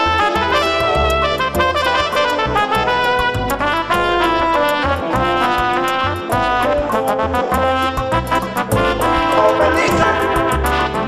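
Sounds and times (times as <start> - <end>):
bass: 0.0 - 11.0
horns playing a melody: 0.0 - 11.0.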